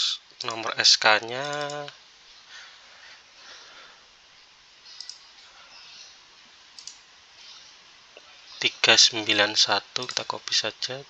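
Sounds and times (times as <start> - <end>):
faint steady hiss: 0.0 - 11.0
computer mouse click: 4.9 - 5.2, 6.8 - 7.0.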